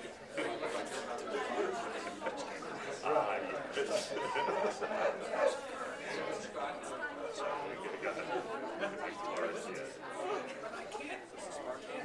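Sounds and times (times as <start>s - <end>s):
murmur of overlapping voices: 0.0s - 12.0s.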